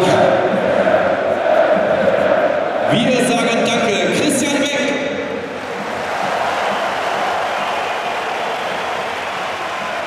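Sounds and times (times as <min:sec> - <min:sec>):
football crowd chanting: 0:00.0 - 0:03.1.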